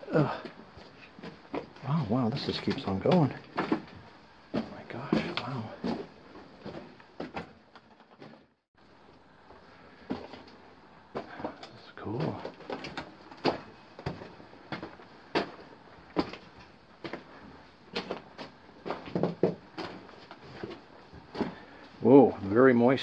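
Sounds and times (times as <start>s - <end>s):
footsteps on gravel: 0.4s - 7.0s.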